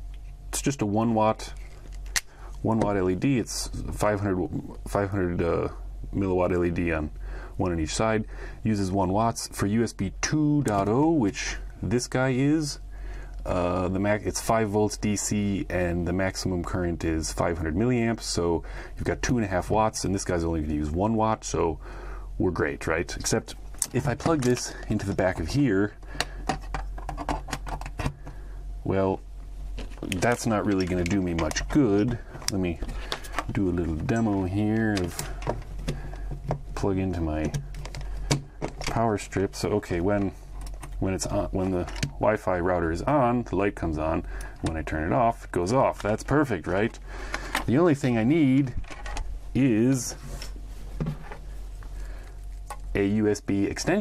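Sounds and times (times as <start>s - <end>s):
steady low hum: 0.0s - 54.0s
cable handling rustle: 1.3s - 2.9s, 23.2s - 28.4s, 29.7s - 42.2s, 45.8s - 53.0s.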